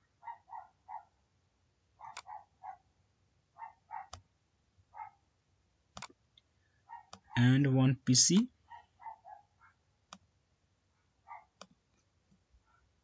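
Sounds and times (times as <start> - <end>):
computer mouse clicks: 6.0 - 6.2.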